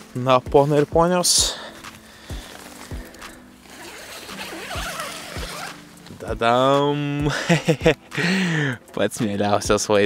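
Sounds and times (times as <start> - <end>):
background music with soft beat: 0.0 - 10.0
zipper being unzipped: 3.6 - 5.9.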